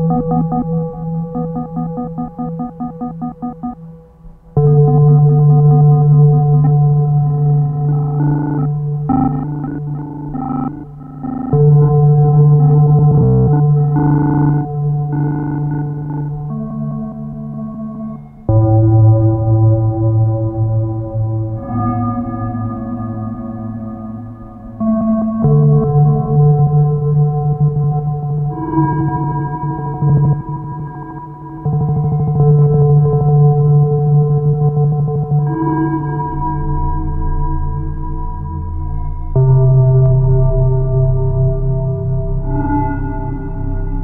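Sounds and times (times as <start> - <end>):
ringing synth drone tones: 0.0 - 4.0, 4.6 - 20.0
low bass tone: 0.0 - 17.2, 32.3 - 44.0
synthesizer drone: 0.0 - 44.0
glitchy stuttering pulse: 0.1 - 3.8.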